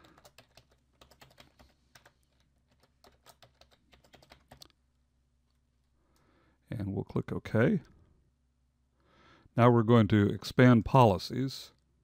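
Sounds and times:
faint keyboard typing: 0:00.0 - 0:04.8.

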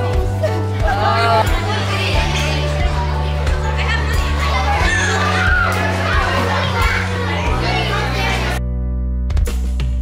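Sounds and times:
children chattering and calling: 0:00.0 - 0:08.6
background music with bass line: 0:00.0 - 0:10.0.

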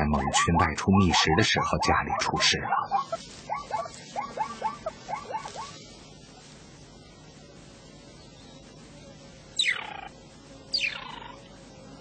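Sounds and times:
mongoose chirping calls: 0:00.0 - 0:05.8, 0:09.6 - 0:10.1, 0:10.7 - 0:11.4.

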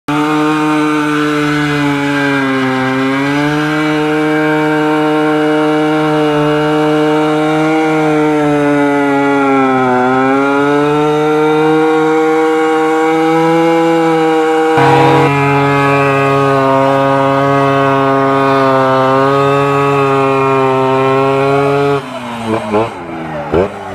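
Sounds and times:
motorcycle engine revving high: 0:10.9 - 0:23.9.

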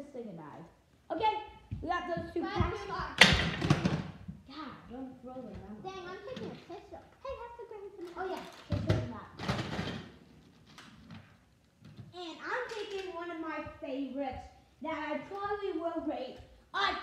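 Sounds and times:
children talking and calling out: 0:01.1 - 0:09.4, 0:12.1 - 0:17.0
plastic toy hitting floor: 0:03.2 - 0:04.4, 0:08.0 - 0:13.2.

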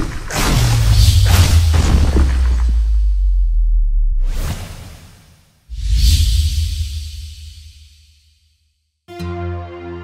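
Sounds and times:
bass hit: 0:00.5 - 0:04.3
deep bass rumble: 0:00.6 - 0:04.3.

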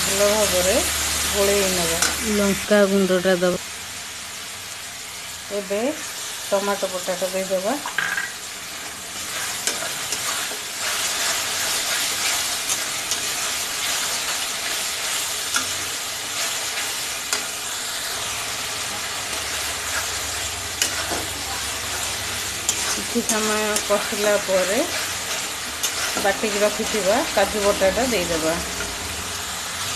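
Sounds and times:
masala sizzling in hot oil: 0:00.0 - 0:29.9
spatula scraping pan: 0:09.2 - 0:18.3, 0:18.9 - 0:29.0.

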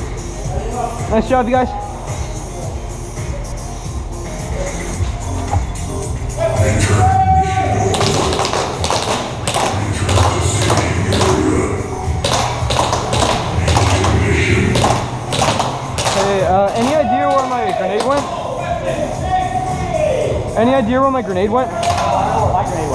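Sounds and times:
indistinct voices: 0:00.0 - 0:22.9.

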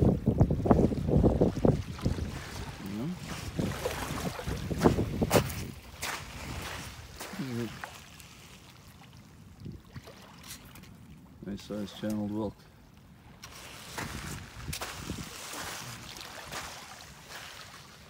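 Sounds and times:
wind rumbling on microphone: 0:00.0 - 0:07.8, 0:09.5 - 0:10.1, 0:13.5 - 0:18.0
small waves lapping at shore: 0:00.0 - 0:18.0.

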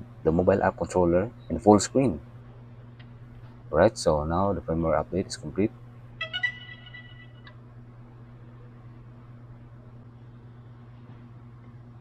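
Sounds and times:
low electrical hum: 0:00.0 - 0:12.0
held electronic tone: 0:06.2 - 0:07.5.

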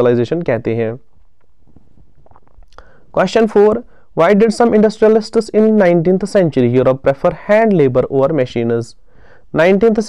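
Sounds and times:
room noise: 0:00.0 - 0:10.0
mouth clicks: 0:01.2 - 0:03.0
breath drawn: 0:02.0 - 0:03.2, 0:09.0 - 0:09.5.

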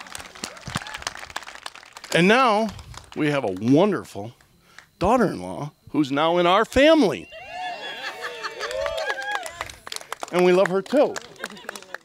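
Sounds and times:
small crowd clapping: 0:00.0 - 0:04.0, 0:08.6 - 0:12.0.

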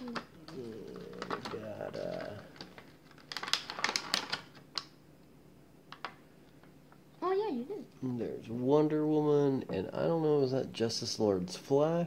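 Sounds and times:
plastic bag crinkling: 0:00.0 - 0:04.9.

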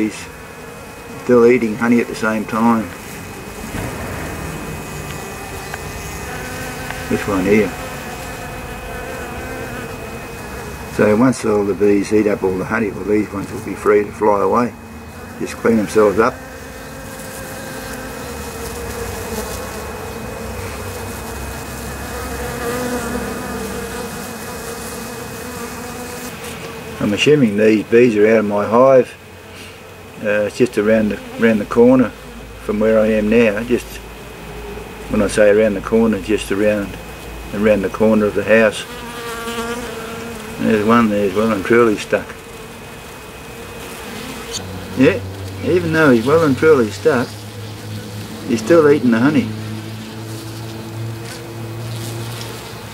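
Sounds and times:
honeybees buzzing: 0:00.0 - 0:52.9.

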